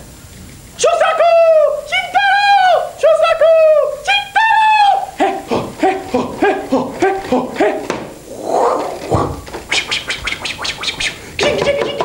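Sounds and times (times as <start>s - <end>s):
man hooting falsetto bird call: 8.3s - 11.4s.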